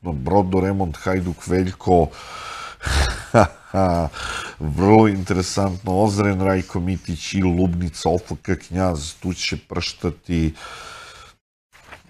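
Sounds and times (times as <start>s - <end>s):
man laughing breathily: 2.7s - 4.8s.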